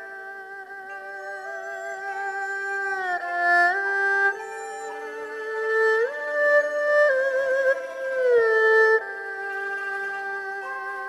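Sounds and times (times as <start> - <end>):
erhu bowed notes: 0.0 - 11.0.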